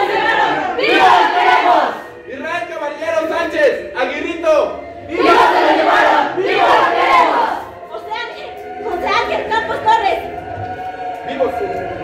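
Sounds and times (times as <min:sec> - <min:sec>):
group shouting in unison: 0:00.0 - 0:02.1, 0:05.1 - 0:07.7.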